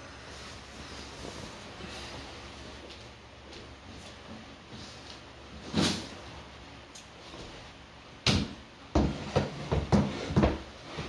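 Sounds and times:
objects knocking and bumping: 8.3s - 11.0s.

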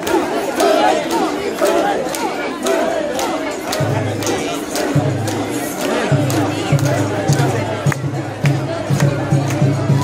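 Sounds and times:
crowd shouting rhythmic chant: 0.0s - 10.0s.

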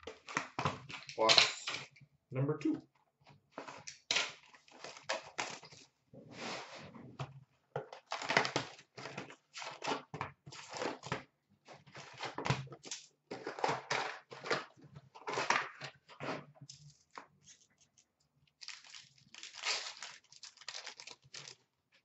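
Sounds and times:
card packs handled: 3.5s - 6.5s, 7.8s - 21.7s.

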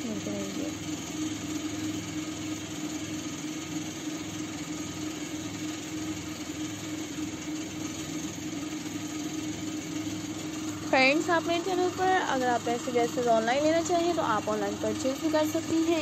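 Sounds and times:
steady background hum: 0.0s - 16.0s.

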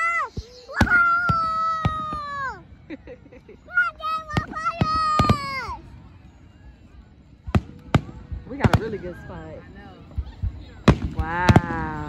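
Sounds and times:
fireworks bangs: 0.0s - 2.7s, 3.8s - 6.1s, 7.3s - 12.0s.

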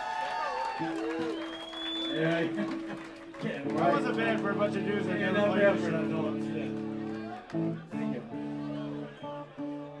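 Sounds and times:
guitar strumming chords: 3.6s - 10.0s.

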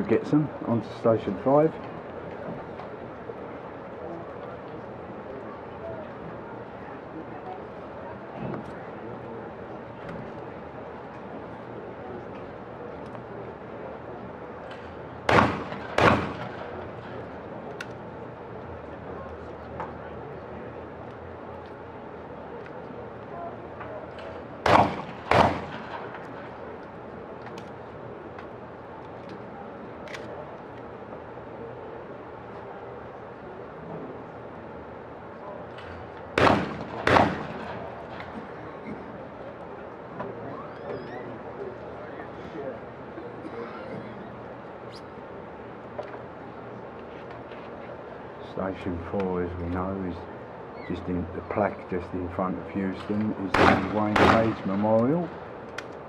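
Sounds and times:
shotgun shots: 15.3s - 16.8s, 24.6s - 26.2s, 36.4s - 38.2s, 53.5s - 54.8s.

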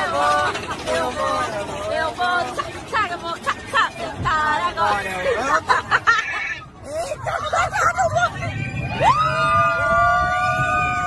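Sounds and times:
excited voices: 0.0s - 11.0s
high-pitched screams: 8.4s - 11.0s.

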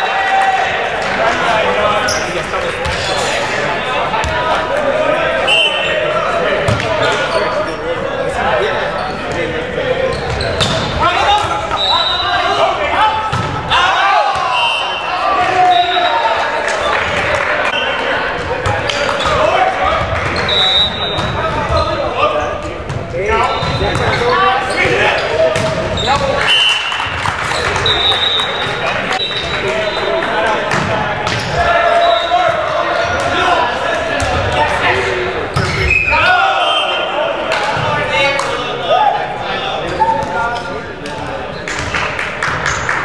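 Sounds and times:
players calling and talking: 0.0s - 43.0s
sneakers squeaking on floor: 2.0s - 3.5s, 8.8s - 11.0s, 18.6s - 33.3s, 35.5s - 37.0s, 39.8s - 40.8s.

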